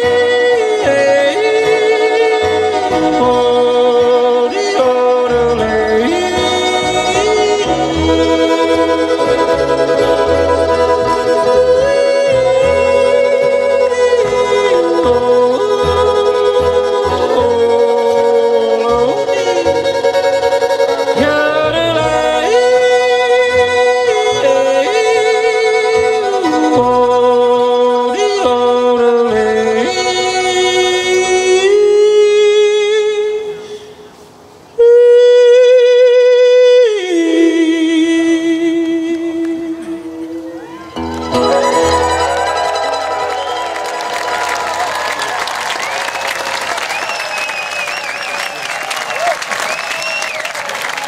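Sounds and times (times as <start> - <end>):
fiddle melody: 0.0 - 34.6, 35.4 - 47.5
bluegrass band playing: 0.0 - 34.7, 37.1 - 51.0.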